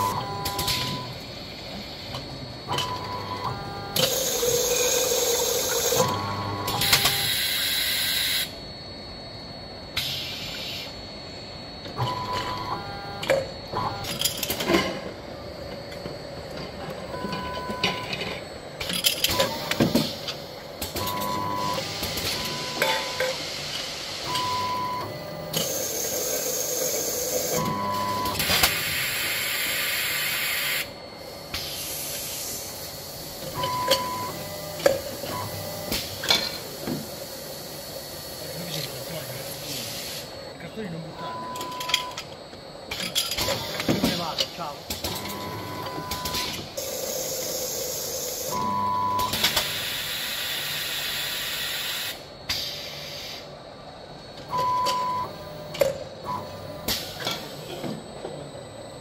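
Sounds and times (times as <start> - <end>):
filling machine running: 0.0 - 42.2
high steady beep: 41.1 - 42.2.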